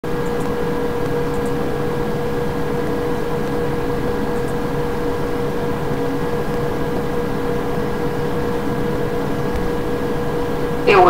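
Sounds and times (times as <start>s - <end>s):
droning hum and hiss: 0.0s - 11.0s.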